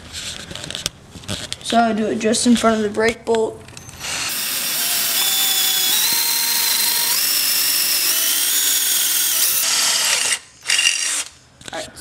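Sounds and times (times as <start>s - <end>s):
cordless drill boring through metal: 3.8s - 11.4s.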